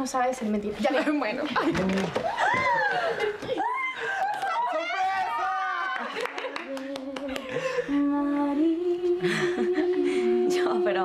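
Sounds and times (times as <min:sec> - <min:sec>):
voices humming long notes: 0:06.7 - 0:11.0.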